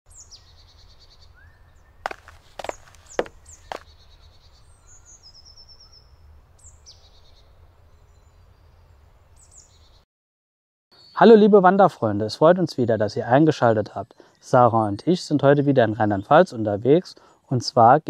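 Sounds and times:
forest birds singing: 0.1s - 10.0s, 10.9s - 12.2s, 12.8s - 17.5s.

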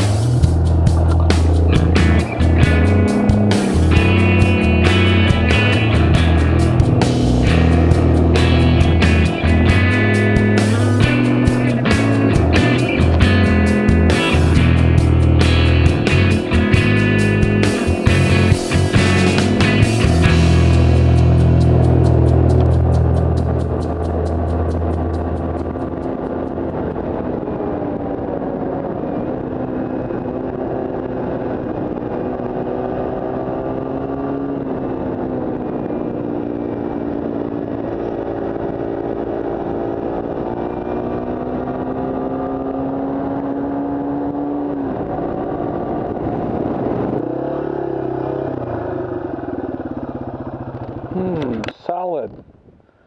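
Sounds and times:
rock music: 0.0s - 27.2s
motorcycle engine running: 0.0s - 52.5s.

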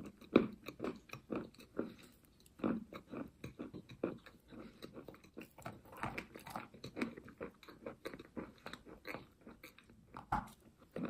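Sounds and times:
chalk being chewed: 0.0s - 11.0s.

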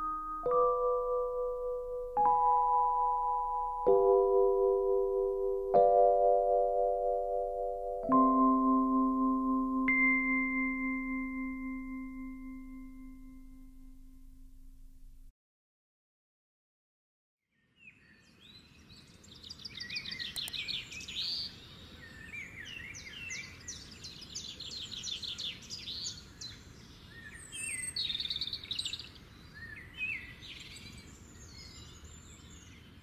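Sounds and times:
steady low background noise: 0.0s - 15.3s.

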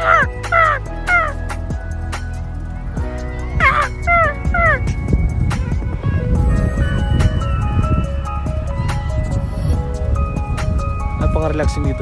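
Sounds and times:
gulls calling: 0.0s - 2.2s, 3.0s - 6.2s.

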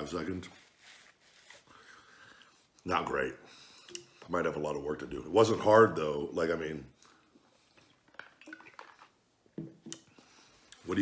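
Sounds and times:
bottle knocking on table: 9.6s - 9.9s.

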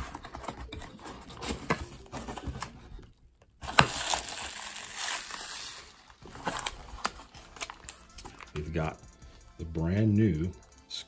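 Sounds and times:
bubble wrap and plastic crinkling: 0.0s - 8.6s.

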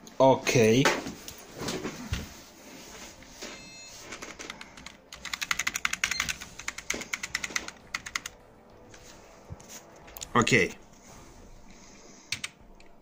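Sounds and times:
keyboard key tapped rapidly: 4.4s - 8.4s.

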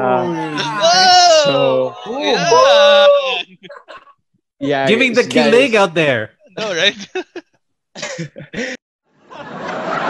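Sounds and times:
man laughing over video call: 6.6s - 8.8s.

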